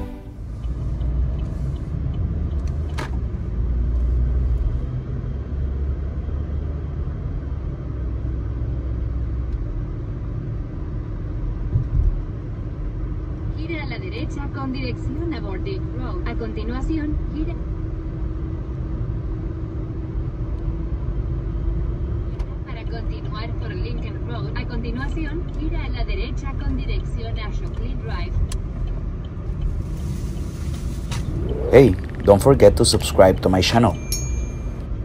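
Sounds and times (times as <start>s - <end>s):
road and engine rumble in car: 0.0s - 35.0s
person speaking: 31.3s - 34.1s.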